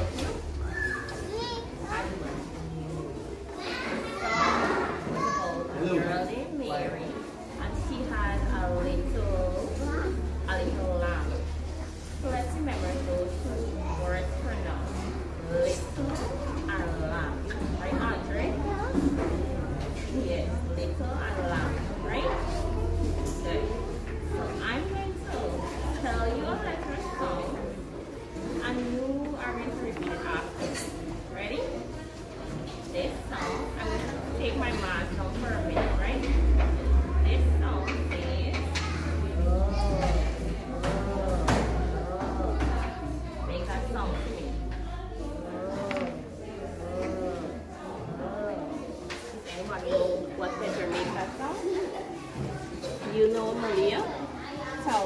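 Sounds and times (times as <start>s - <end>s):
children chattering and calling out: 0.0s - 55.0s.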